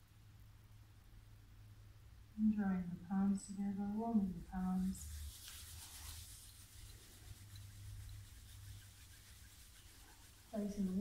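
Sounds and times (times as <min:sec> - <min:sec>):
low steady hum: 0:00.0 - 0:11.0
palms rubbing together: 0:04.4 - 0:11.0.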